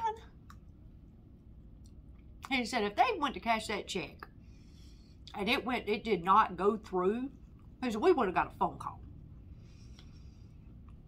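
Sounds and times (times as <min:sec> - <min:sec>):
woman's voice: 0:00.0 - 0:00.3, 0:02.5 - 0:04.3, 0:05.3 - 0:09.0.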